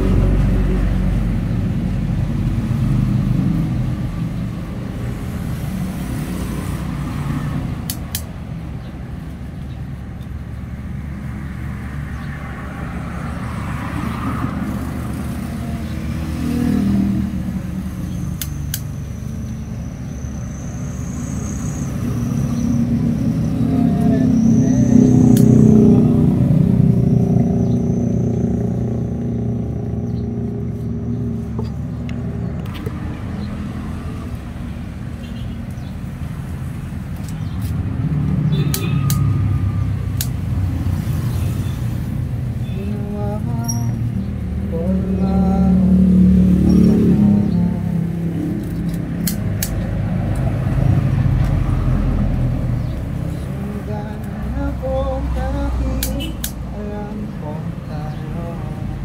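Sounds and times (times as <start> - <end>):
vehicles passing with low rumble: 0.0 - 59.0
sharp clicks: 7.8 - 8.4, 18.4 - 19.6, 25.3 - 25.6, 40.1 - 40.4, 48.6 - 50.5, 56.0 - 56.7.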